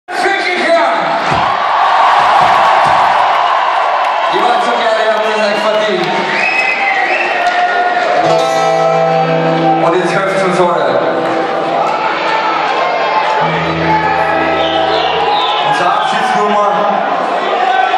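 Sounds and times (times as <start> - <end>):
crowd cheering and shouting: 0.1 - 17.9
rock band playing: 8.0 - 17.2.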